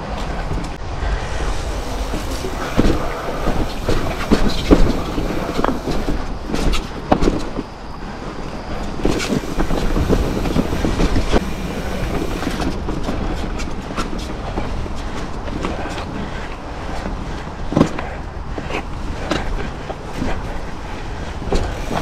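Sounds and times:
bike rattle and tyre noise: 0:00.0 - 0:22.0.

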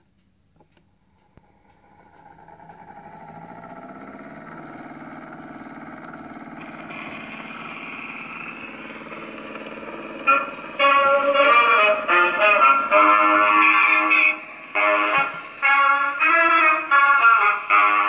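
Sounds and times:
gramophone motor whirring: 0:00.6 - 0:18.0
hiss: 0:06.6 - 0:16.4.

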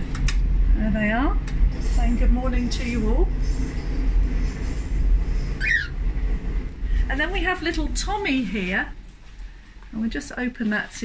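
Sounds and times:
low rumble: 0:00.0 - 0:10.4
cockatiel chirp: 0:05.6 - 0:06.0.

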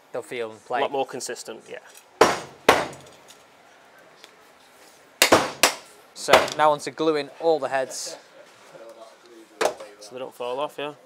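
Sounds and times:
sharp knocks of hard objects: 0:02.2 - 0:03.2, 0:05.2 - 0:06.7.

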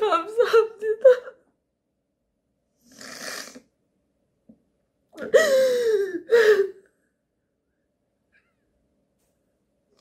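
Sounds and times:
woman crying: 0:00.0 - 0:01.4, 0:05.2 - 0:06.9.

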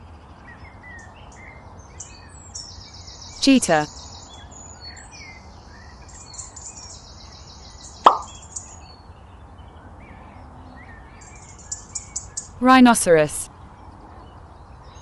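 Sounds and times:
birds chirping faintly: 0:00.0 - 0:15.0.

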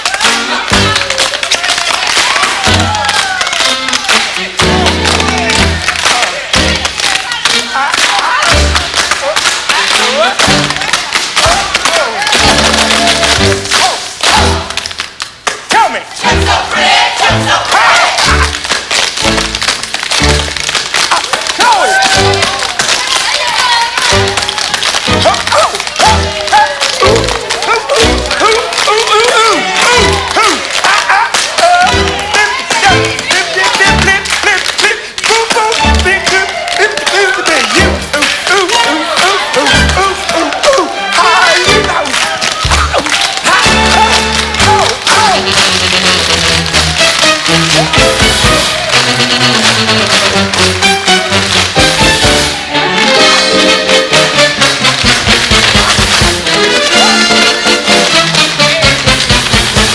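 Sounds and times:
tap shoes clicking on stage: 0:00.1 - 0:15.9, 0:17.5 - 0:59.9
up-tempo music with bass line: 0:02.6 - 0:07.0, 0:31.7 - 0:34.4, 0:43.5 - 0:59.9.

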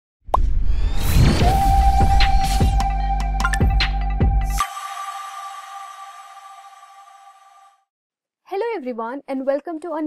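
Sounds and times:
rising whoosh: 0:00.4 - 0:07.6
steady synth tone: 0:00.8 - 0:07.8.

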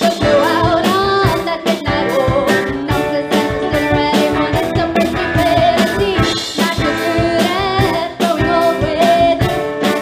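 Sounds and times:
drum kit: 0:00.0 - 0:10.0
electric guitar: 0:00.0 - 0:10.0
woman singing: 0:00.0 - 0:10.0.

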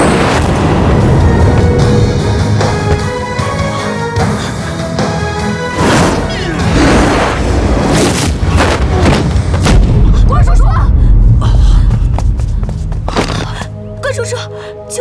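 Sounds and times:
dramatic action music: 0:00.0 - 0:15.0
heavy low boom: 0:09.5 - 0:12.1.

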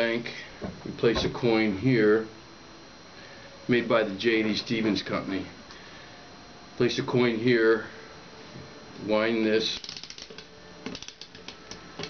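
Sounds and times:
spring mechanism clicking: 0:09.8 - 0:11.8.

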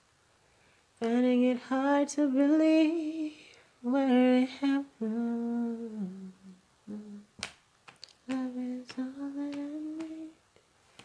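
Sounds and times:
woman humming: 0:05.0 - 0:07.3.

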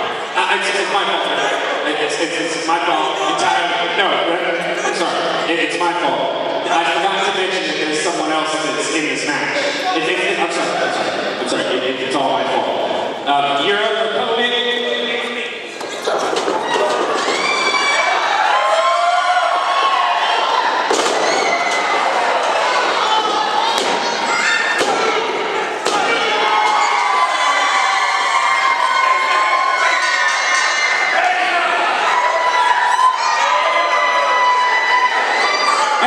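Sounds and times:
crowd yelling and cheering: 0:00.0 - 0:36.0.

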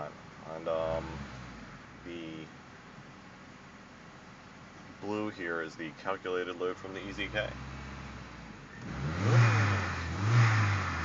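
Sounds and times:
car engine idling and revving: 0:00.0 - 0:11.0.

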